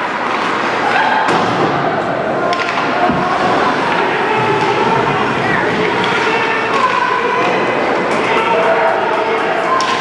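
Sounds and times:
hockey sticks hitting puck: 0.0 - 10.0
players shouting: 1.9 - 10.0
skates on ice: 2.4 - 10.0.

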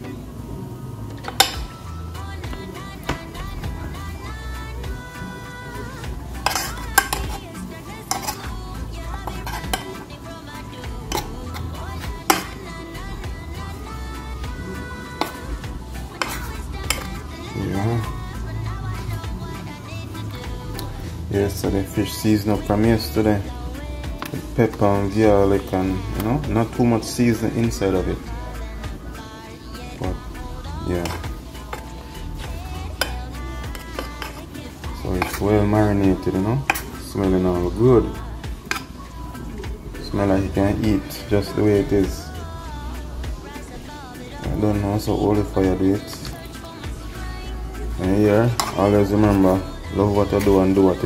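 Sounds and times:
background music: 0.0 - 51.0
fork clinking against metal pan: 1.2 - 1.8, 6.4 - 8.5, 9.2 - 10.1, 11.1 - 12.7, 15.2 - 15.5, 16.1 - 17.3, 36.6 - 37.0, 38.6 - 39.0, 48.5 - 49.4
fork stirring in flour: 1.3 - 28.1, 29.9 - 39.3, 44.3 - 51.0
fork scraping glass bowl: 6.4 - 7.5, 8.1 - 8.5, 9.2 - 10.0, 16.0 - 17.3, 33.0 - 34.5, 48.6 - 48.8.

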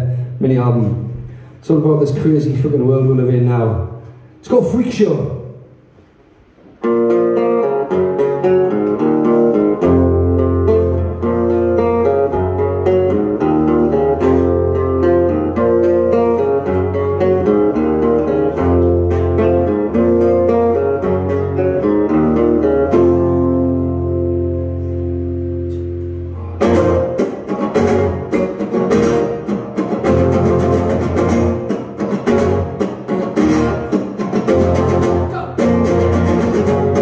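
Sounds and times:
acoustic guitars playing: 5.7 - 37.0.

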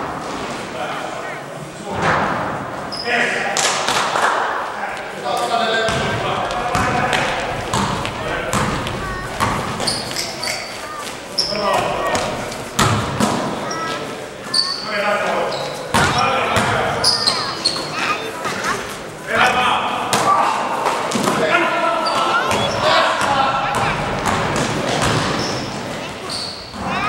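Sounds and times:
players calling out: 4.6 - 27.0
sneakers squeaking: 4.9 - 19.6, 21.1 - 27.0
basketball bouncing on court: 5.8 - 13.8, 15.9 - 18.0, 22.5 - 27.0.

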